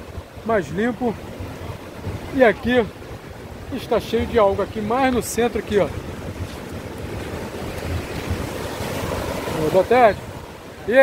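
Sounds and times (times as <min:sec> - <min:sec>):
surf waves breaking on sand: 0:00.0 - 0:11.0
wind buffeting microphone: 0:00.0 - 0:11.0.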